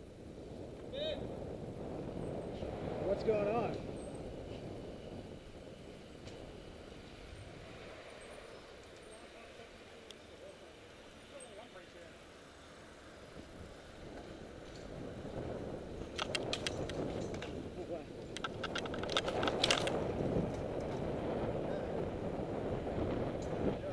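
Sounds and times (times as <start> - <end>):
road and wind noise: 0.0 - 23.9
sharp clicks: 16.0 - 17.6, 18.2 - 20.6.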